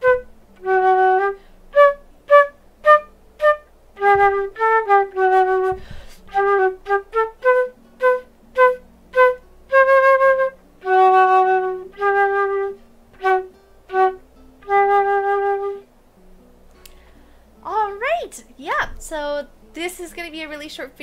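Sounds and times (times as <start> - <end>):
flute playing a simple tune: 0.0 - 15.9.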